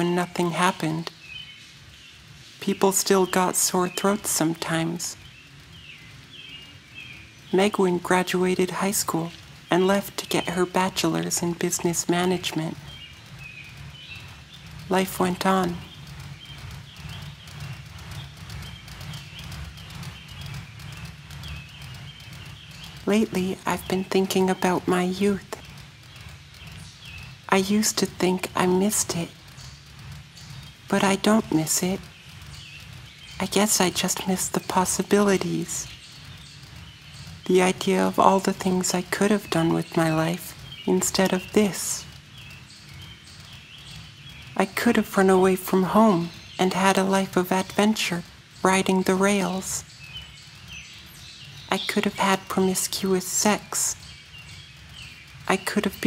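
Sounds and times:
ceiling fan low hum: 0.0s - 56.0s
ceiling fan rhythmic knocking: 0.0s - 56.0s.

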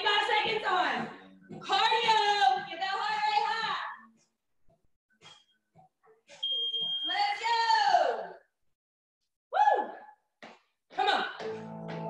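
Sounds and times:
digital timer beep: 6.4s - 7.3s.

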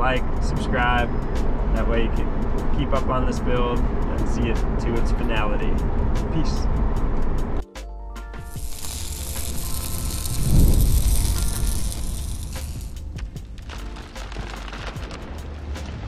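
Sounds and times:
long hissing whoosh: 8.5s - 13.2s.

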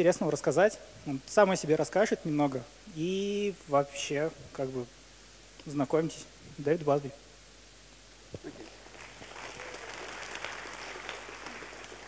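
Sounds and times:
audience applauding: 8.8s - 12.0s.

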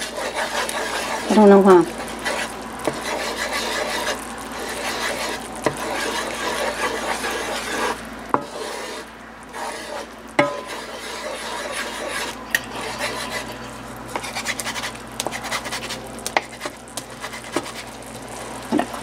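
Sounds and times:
wooden spatula scraping a skillet: 0.0s - 18.0s.

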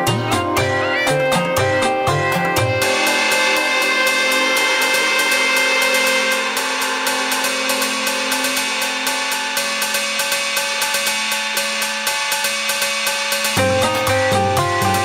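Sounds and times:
held musical tones: 0.0s - 12.3s.

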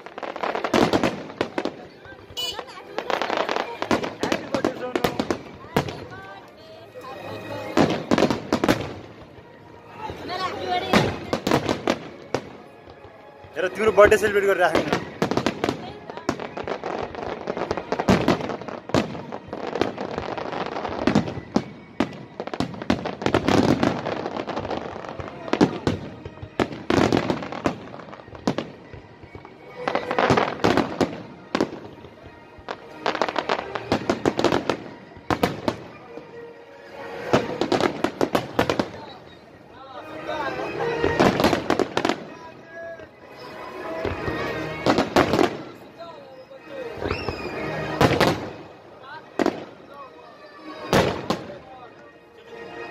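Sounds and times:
fireworks bangs and crackles: 0.0s - 51.8s.

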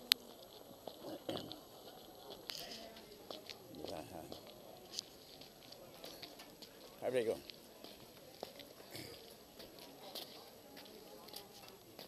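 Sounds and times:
footsteps on brick paving: 0.0s - 12.0s
pedestrian street background: 0.0s - 12.0s.

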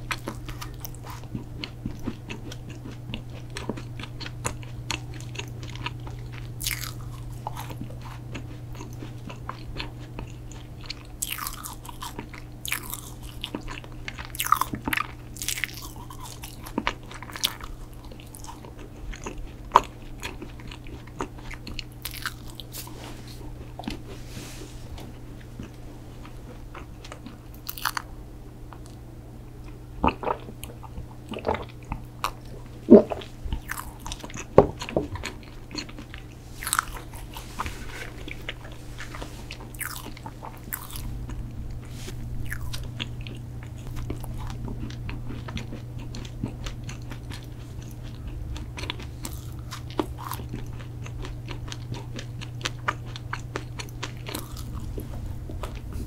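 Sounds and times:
chewing crumbly cookie: 0.0s - 29.0s, 29.6s - 56.0s
steady low hum: 0.0s - 56.0s.

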